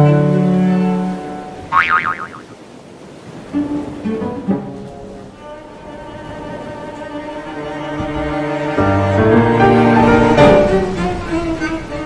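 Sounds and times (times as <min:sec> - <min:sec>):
water washing: 0:00.3 - 0:08.8.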